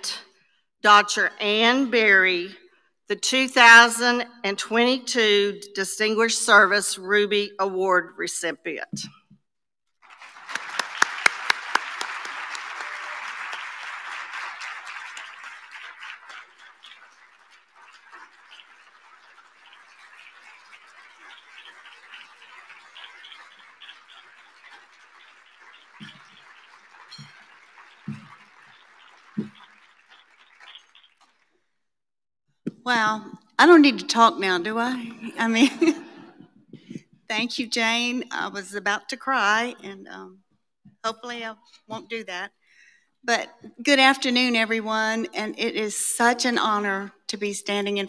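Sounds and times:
audience applause: 10.0 - 31.3.

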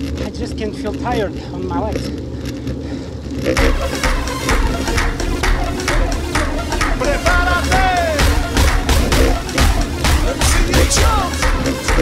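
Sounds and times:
wind and road noise rumble: 0.0 - 7.0
loud electronic music: 3.5 - 12.0.

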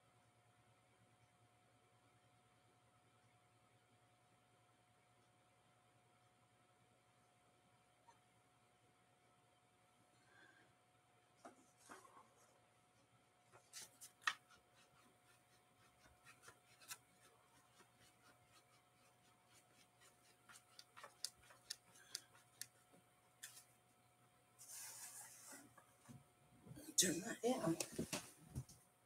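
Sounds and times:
faint clicks and taps: 13.5 - 23.7, 27.8 - 28.8.

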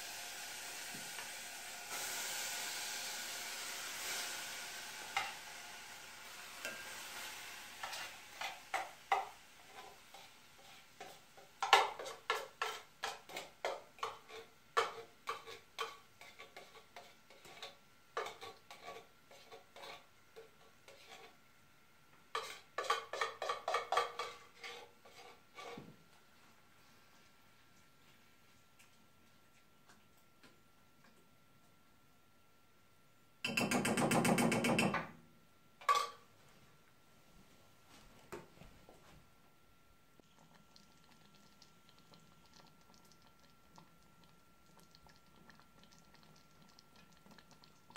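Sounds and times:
metal spoon scraping a can: 12.0 - 21.4.

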